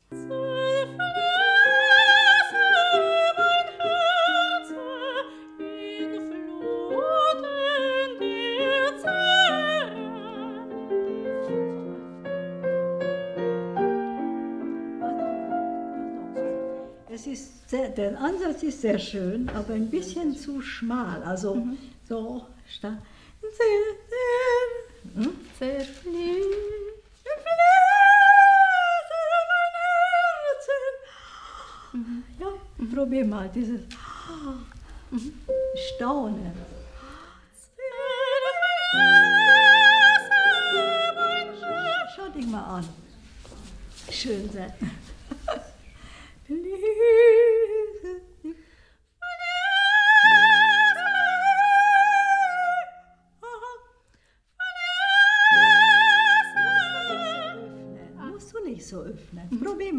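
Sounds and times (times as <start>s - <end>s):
woman singing vocal exercise: 0.0s - 10.8s, 17.2s - 31.1s, 31.8s - 43.0s
held accompanying chords: 35.1s - 37.4s.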